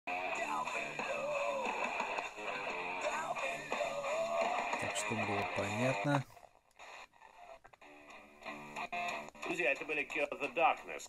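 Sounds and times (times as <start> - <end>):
rock song on portable radio: 0.1 - 11.0.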